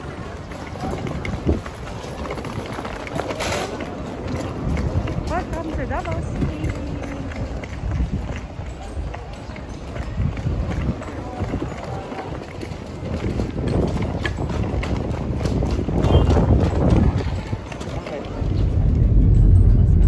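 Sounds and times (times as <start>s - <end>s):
luggage trolley rattling on concrete: 0.0s - 19.0s
people's voices: 0.0s - 20.0s.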